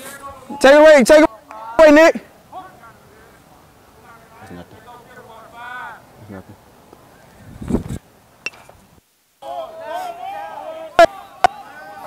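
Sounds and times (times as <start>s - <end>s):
distant voices calling: 8.2s - 12.0s.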